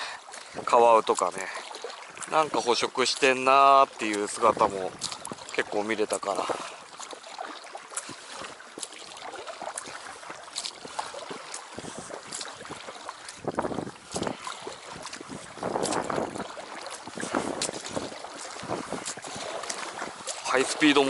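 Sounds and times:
oars splashing in water: 0.0s - 21.0s
water dripping: 0.0s - 21.0s
wind on microphone: 11.7s - 20.3s.

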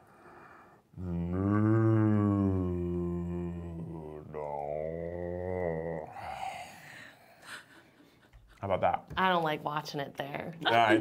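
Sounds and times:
faint breathing: 0.0s - 0.9s, 6.1s - 8.2s
low voice humming: 1.0s - 6.9s.

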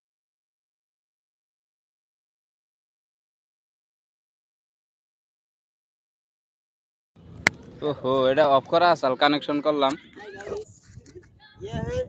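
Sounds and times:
quiet voices talking: 7.7s - 12.0s.

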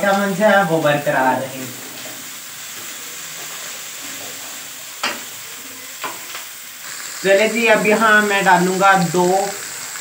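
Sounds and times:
vegetables sizzling in oil: 0.0s - 10.0s.

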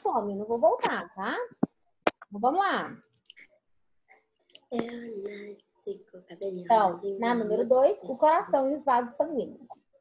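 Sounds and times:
person speaking: 0.0s - 3.5s, 4.5s - 9.8s
low room sound: 0.0s - 10.0s.

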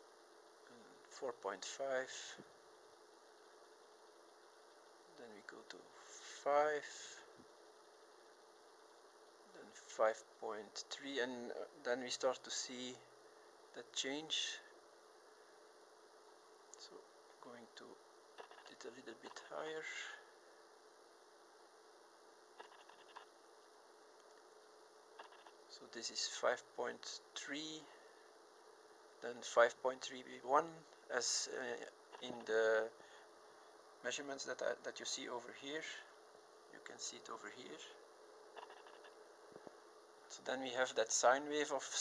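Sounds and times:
faint steady hum: 0.0s - 42.0s
faint small clicks: 24.2s - 24.5s.

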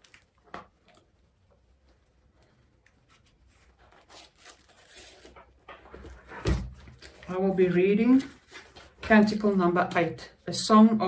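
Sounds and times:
book pages rustling: 0.0s - 10.1s.

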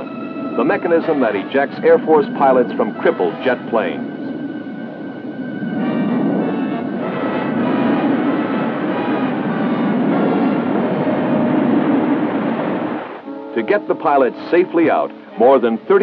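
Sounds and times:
faint film score music: 0.0s - 16.0s
jet aircraft roar: 0.0s - 16.0s
air rushing past: 3.1s - 13.8s.

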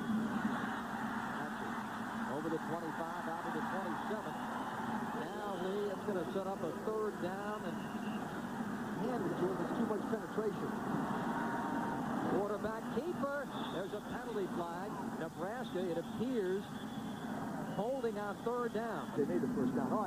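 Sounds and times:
stadium crowd noise: 0.0s - 20.0s
man commentating: 1.4s - 7.9s, 8.9s - 10.9s, 12.3s - 16.7s.

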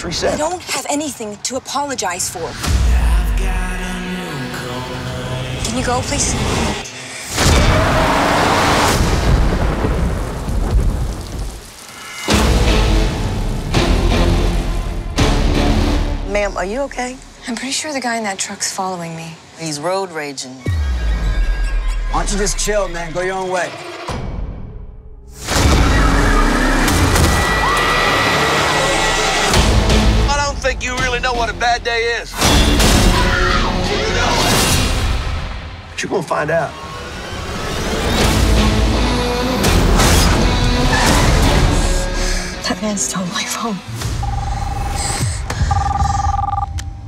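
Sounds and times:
film trailer music: 0.0s - 47.0s
heavy rain: 7.1s - 17.6s
thunder rumbling: 7.5s - 15.2s.

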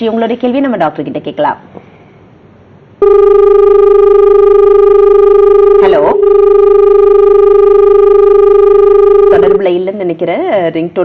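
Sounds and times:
buzzy telephone line tone: 3.0s - 9.7s.

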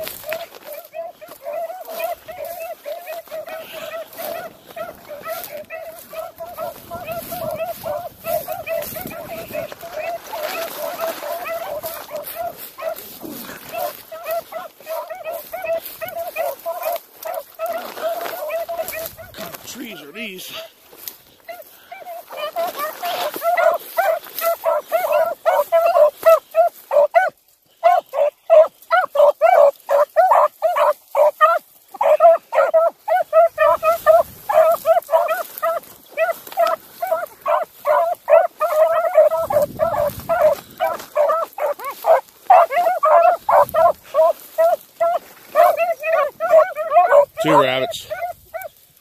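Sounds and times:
hound baying: 0.0s - 48.8s.

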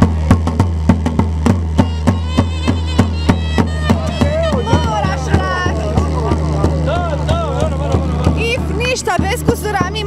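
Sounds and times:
high wooden pipe: 0.0s - 9.4s
steady low drone: 0.0s - 9.8s
bass drum beaten with a stick: 0.0s - 10.0s.

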